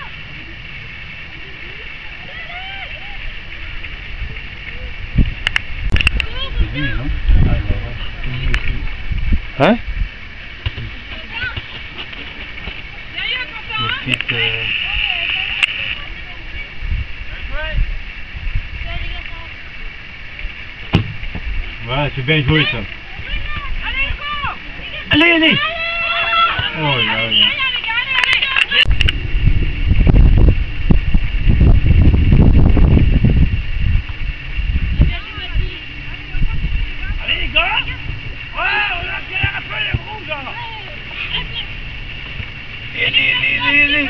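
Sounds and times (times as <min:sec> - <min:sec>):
distant shouts and calls: 0:00.0 - 0:09.0, 0:12.6 - 0:18.1, 0:18.8 - 0:28.9, 0:35.0 - 0:44.0
wind rumble on microphone: 0:00.0 - 0:44.0.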